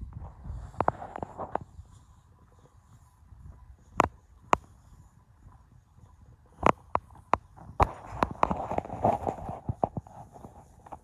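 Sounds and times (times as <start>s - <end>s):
footsteps walking: 0.0s - 11.0s.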